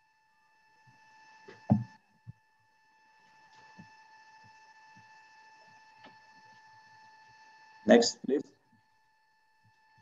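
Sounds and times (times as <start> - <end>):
thin electrical whine: 0.0 - 10.0.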